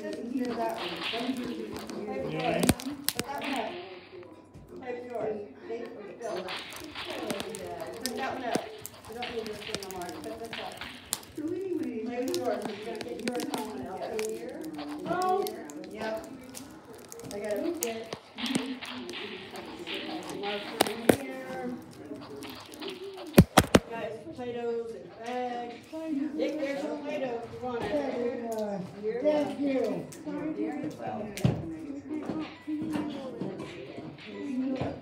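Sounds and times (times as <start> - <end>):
indistinct voices talking: 0.0 - 25.9.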